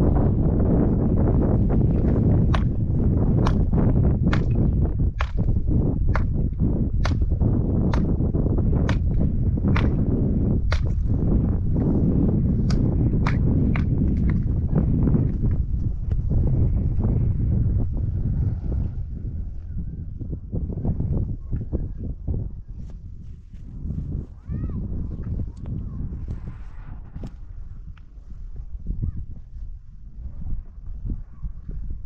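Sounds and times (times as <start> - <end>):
low rumble: 0.0 - 32.0.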